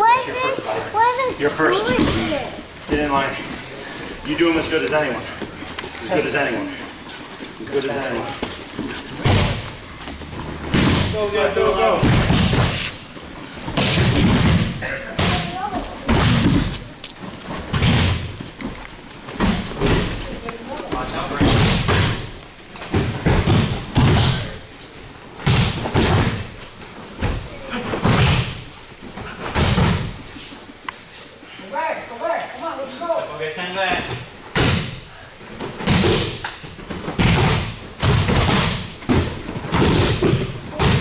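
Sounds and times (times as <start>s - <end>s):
heavy thuds on judo mats: 9.1s - 12.8s, 13.6s - 16.9s, 17.5s - 18.6s, 20.9s - 24.6s, 25.4s - 26.6s, 27.2s - 30.3s, 34.5s - 41.0s.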